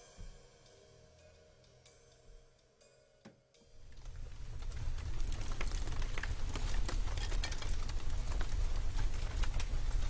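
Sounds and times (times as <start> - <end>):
crackles and ticks: 0.6 - 10.0.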